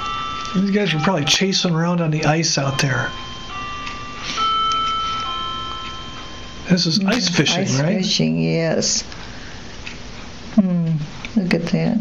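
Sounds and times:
bell-like ringing tones: 0:00.0 - 0:08.4.

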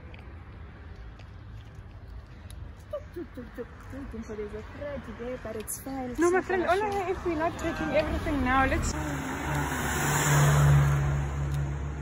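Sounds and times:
car engine with road noise: 0:00.0 - 0:12.0.

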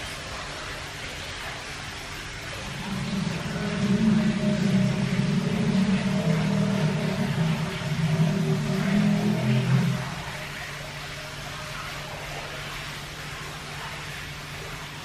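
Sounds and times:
ventilation fans humming: 0:00.0 - 0:15.0.

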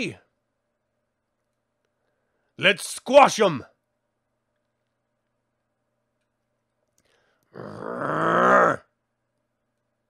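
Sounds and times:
man imitating a growl: 0:07.6 - 0:08.9.

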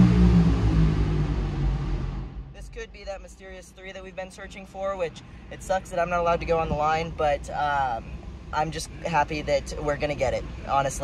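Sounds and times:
vehicle engine running: 0:00.0 - 0:02.9.

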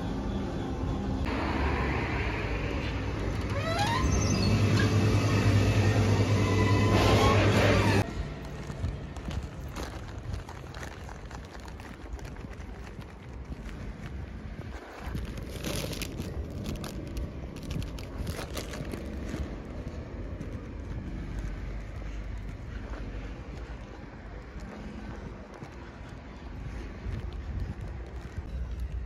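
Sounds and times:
paper bag crinkling: 0:08.0 - 0:22.2
wind rumbling on microphone: 0:08.0 - 0:29.0.

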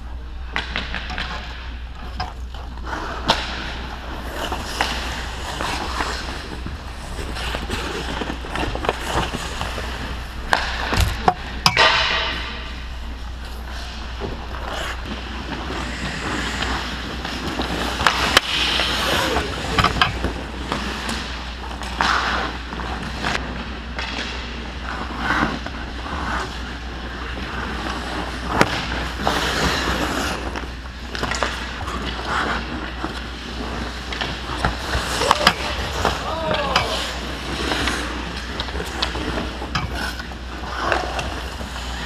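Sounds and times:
hockey sticks and puck clacking: 0:00.4 - 0:42.0
skate blades scraping ice: 0:00.5 - 0:42.0.

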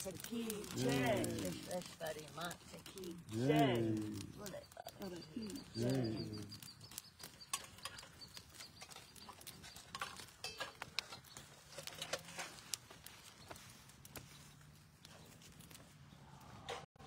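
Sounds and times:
rustling: 0:00.0 - 0:16.7.

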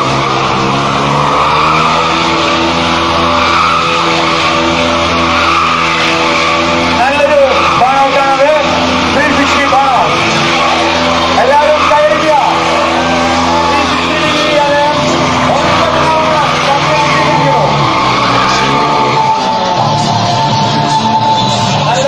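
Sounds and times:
motorcycle engine high revs: 0:00.0 - 0:22.0
tyre squeals: 0:00.0 - 0:22.0.

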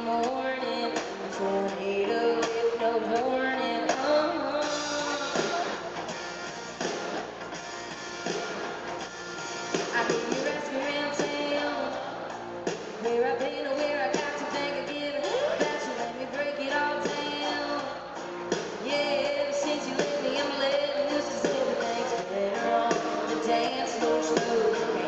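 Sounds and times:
electric guitar: 0:00.0 - 0:25.0
steady drum beat: 0:04.6 - 0:11.7.

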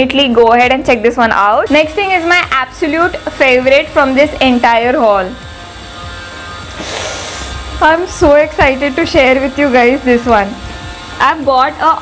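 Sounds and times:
woman speaking: 0:00.0 - 0:05.4, 0:07.8 - 0:10.6, 0:11.2 - 0:12.0.

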